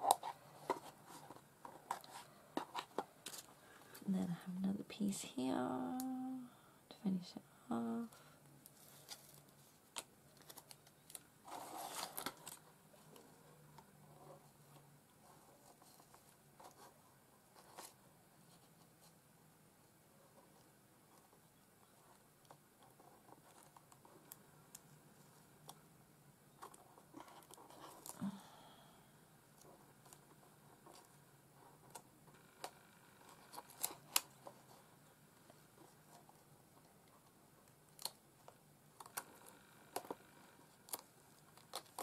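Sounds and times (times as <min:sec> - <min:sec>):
paper rustle: 0:08.7 - 0:12.7.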